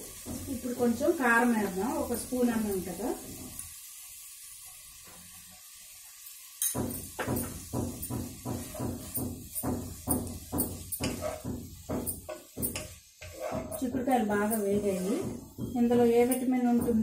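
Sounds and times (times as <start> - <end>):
spatula scraping against pot: 10.6 - 17.0.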